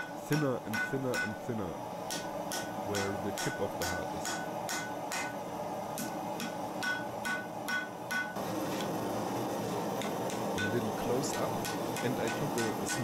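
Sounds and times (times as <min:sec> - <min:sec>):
hammer striking metal on anvil: 0:00.0 - 0:01.5, 0:02.1 - 0:05.4, 0:06.0 - 0:08.4, 0:10.0 - 0:13.0.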